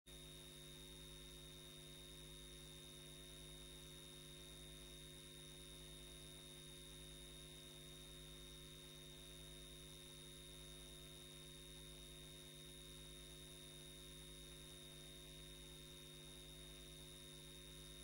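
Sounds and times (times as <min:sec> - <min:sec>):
faint electrical hum: 0:00.1 - 0:18.0.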